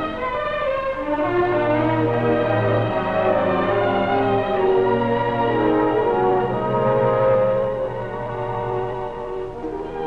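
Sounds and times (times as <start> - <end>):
orchestral strings: 0.0 - 10.0.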